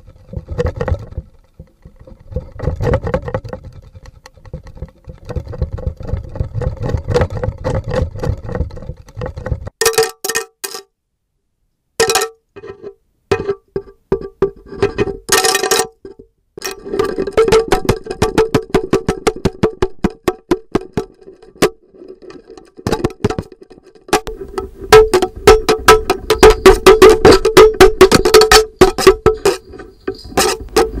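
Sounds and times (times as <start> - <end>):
twangy plucks on fruit fibres: 22.8 - 31.0.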